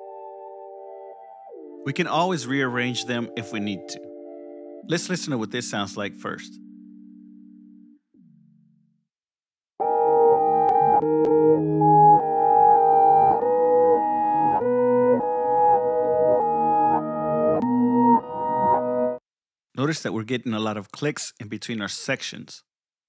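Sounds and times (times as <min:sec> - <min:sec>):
reversed piano loop: 0:09.8 - 0:19.2.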